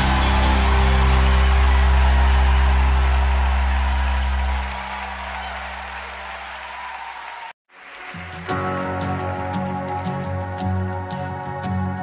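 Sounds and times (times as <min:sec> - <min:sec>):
crowd applause: 0:00.0 - 0:10.3.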